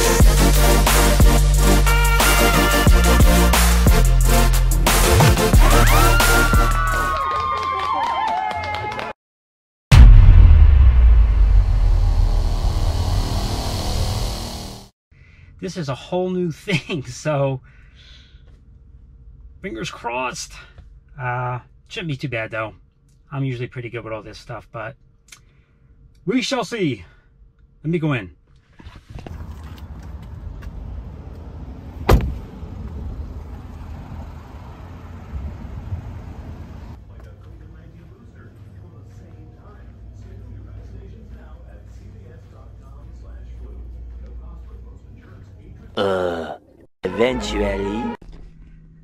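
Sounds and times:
low outdoor rumble: 9.9s - 14.8s, 29.3s - 46.0s
bass-heavy logo sound effect: 9.9s - 14.9s
car door shutting: 32.0s - 32.5s.

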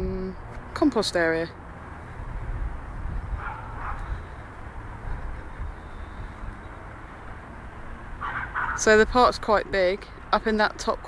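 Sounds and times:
wind rumble on microphone: 0.0s - 0.6s, 1.6s - 11.0s.

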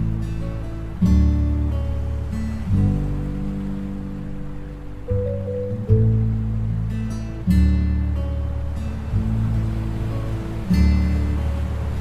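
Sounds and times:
acoustic guitar chord ringing: 0.0s - 12.0s
ocean surf: 0.0s - 12.0s.

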